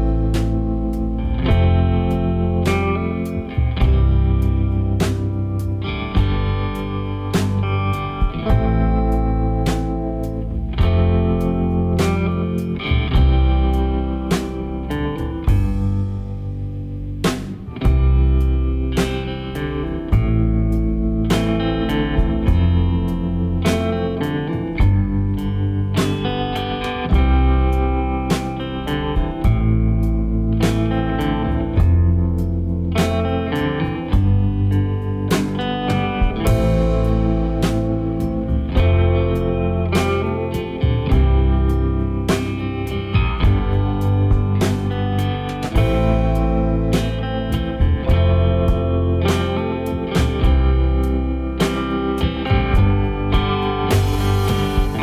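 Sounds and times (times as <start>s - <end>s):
blues guitar music: 0.0s - 55.0s.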